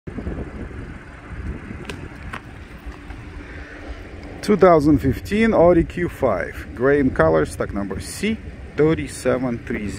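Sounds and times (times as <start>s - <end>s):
wind buffeting microphone: 0.1s - 9.9s.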